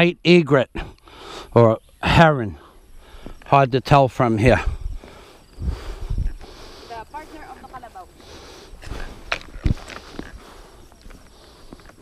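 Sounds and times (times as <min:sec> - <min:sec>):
footsteps through grass: 0:05.0 - 0:12.0.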